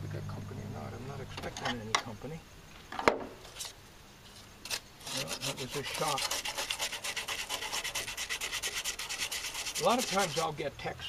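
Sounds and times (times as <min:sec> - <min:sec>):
hand sanding sheet metal: 0:04.7 - 0:10.6.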